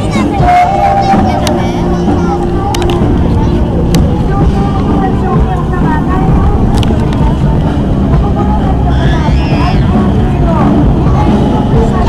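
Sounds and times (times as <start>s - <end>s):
crowd voices: 0.0s - 12.0s
distant turboprop engines droning: 0.0s - 12.0s.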